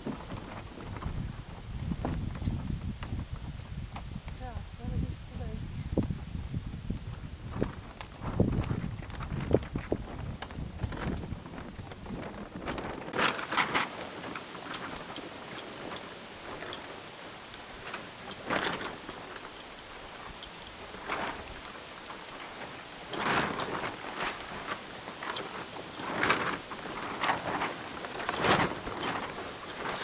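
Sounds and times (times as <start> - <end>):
low water wash: 0.0 - 30.0.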